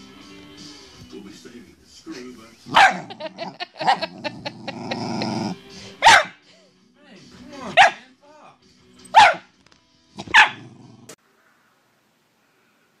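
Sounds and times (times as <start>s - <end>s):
dog barking: 2.7s - 4.1s, 6.0s - 6.4s, 7.7s - 8.0s, 9.1s - 9.5s, 10.2s - 10.7s.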